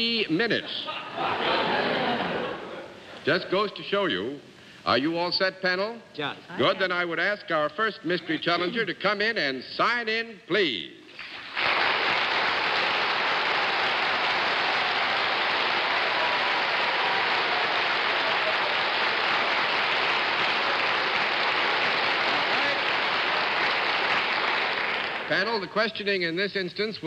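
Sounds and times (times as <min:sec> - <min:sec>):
studio audience applauding: 0:11.2 - 0:25.7.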